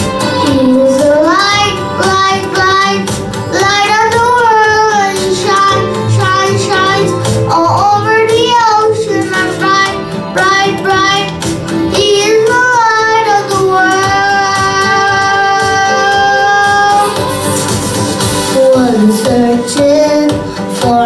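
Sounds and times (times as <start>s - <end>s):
boy singing into a microphone: 0.4s - 17.2s, 18.5s - 21.0s.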